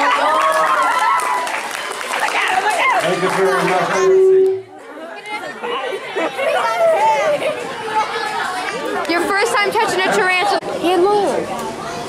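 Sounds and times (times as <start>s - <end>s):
indistinct chatter: 0.0s - 12.0s.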